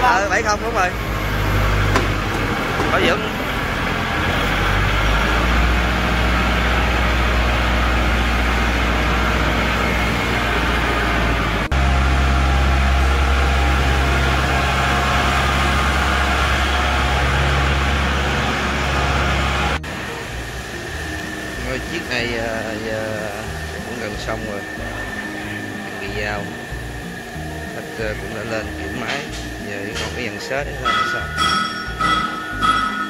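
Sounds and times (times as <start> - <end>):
tractor diesel engine running: 0.0 - 33.0.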